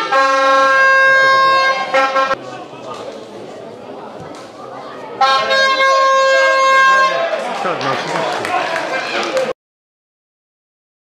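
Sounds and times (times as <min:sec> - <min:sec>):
horn blast: 0:00.0 - 0:02.4, 0:05.2 - 0:07.4.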